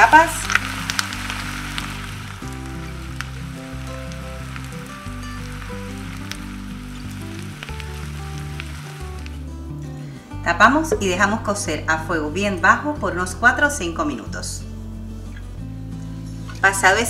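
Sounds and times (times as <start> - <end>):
butter sizzling in a skillet: 0.0 - 9.5
background music: 0.0 - 17.0.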